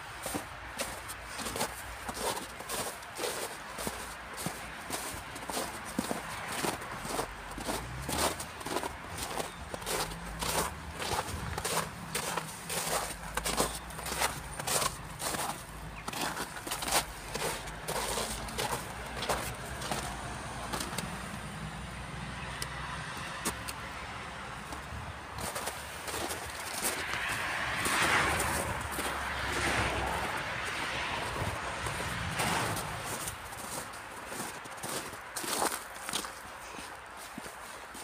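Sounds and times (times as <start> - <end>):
footsteps on packed snow: 0.0 - 21.4, 24.6 - 38.0.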